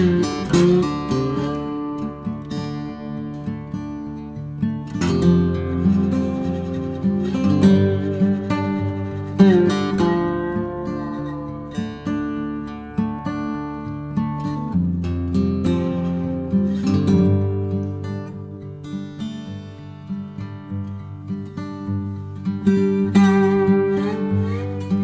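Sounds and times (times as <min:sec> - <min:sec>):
acoustic guitar plucked and strummed: 0:00.0 - 0:25.0.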